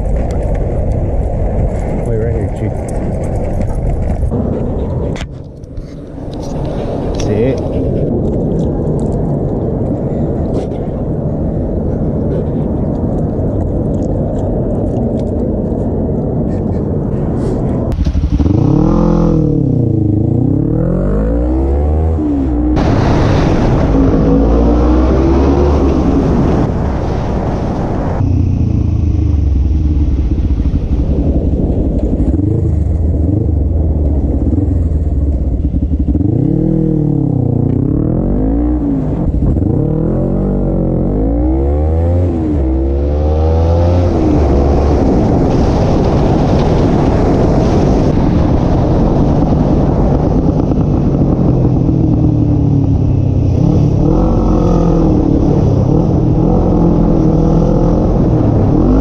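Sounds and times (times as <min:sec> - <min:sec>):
street traffic noise: 0:00.0 - 0:59.0
wind rush: 0:00.0 - 0:59.0
motorcycle engine revving: 0:17.9 - 0:26.7, 0:28.2 - 0:59.0.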